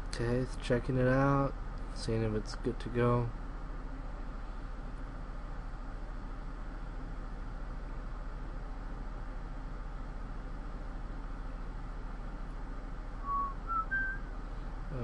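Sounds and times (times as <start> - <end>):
low hum: 12.6 - 15.0
rising whistled notes: 13.2 - 14.3.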